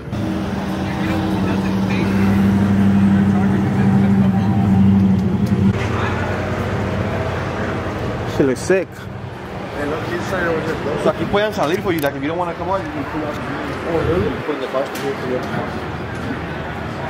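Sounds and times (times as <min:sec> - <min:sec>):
car engine running: 0:00.0 - 0:08.3.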